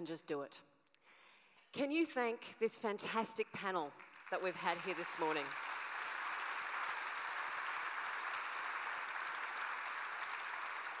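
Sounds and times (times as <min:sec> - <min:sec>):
audience applauding: 0:04.0 - 0:11.0.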